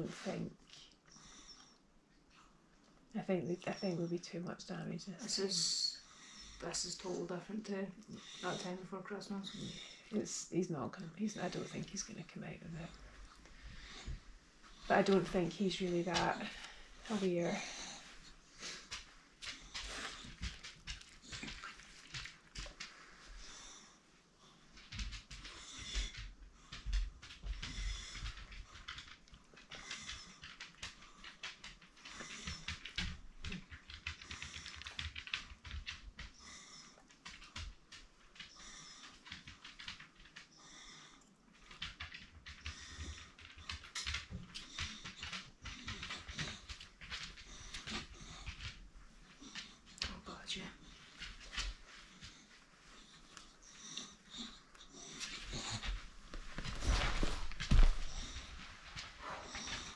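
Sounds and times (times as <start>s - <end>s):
dog scrabbling and clicking: 17.6s - 23.3s, 24.7s - 59.9s.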